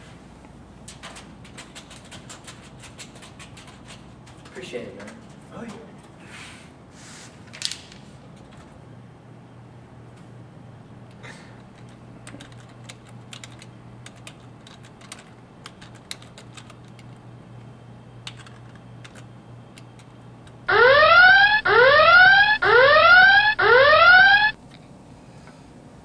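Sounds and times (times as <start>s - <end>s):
keyboard keys clicking: 11.8s - 17.2s, 18.2s - 20.6s
electronic alarm rising whoops: 20.7s - 24.6s.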